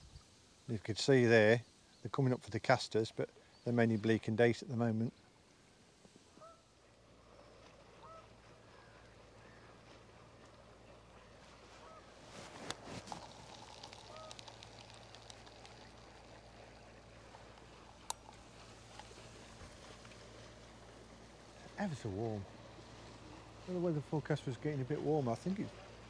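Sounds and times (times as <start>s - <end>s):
faint bird calls: 6.3s - 20.3s
brief rustle: 11.6s - 16.4s.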